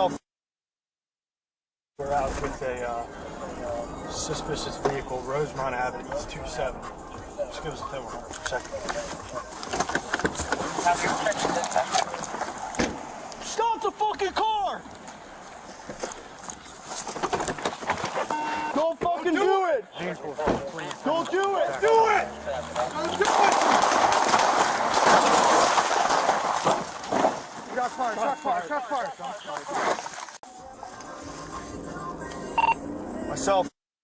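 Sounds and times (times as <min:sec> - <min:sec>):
short electronic beep: 0:18.3 - 0:18.8, 0:32.6 - 0:32.8
car pulling away: 0:21.6 - 0:26.6.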